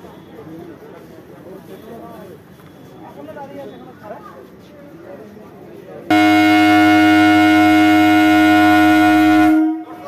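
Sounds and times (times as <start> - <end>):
train air horn blast: 6.1 - 10.0.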